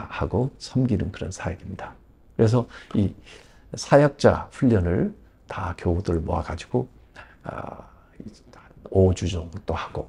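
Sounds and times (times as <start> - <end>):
man speaking softly: 0.0 - 10.0.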